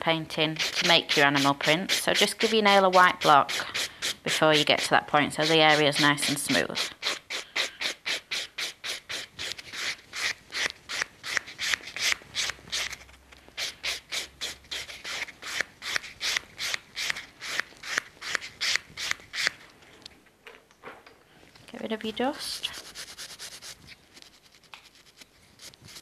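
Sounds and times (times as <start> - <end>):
buffing block rubbing a nail: 0.4 - 19.6, 22.4 - 26.0.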